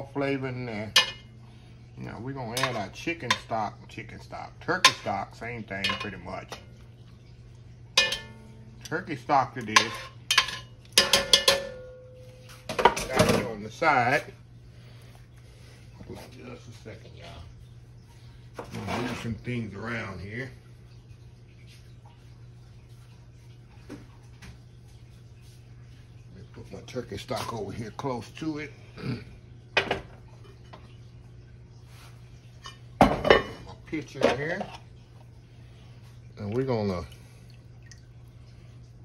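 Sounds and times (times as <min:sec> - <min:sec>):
low steady hum: 0:00.0 - 0:39.0
metal tongs clinking: 0:02.6 - 0:03.5, 0:05.8 - 0:06.2, 0:08.0 - 0:08.5
kitchen items clicking and knocking: 0:09.7 - 0:11.9.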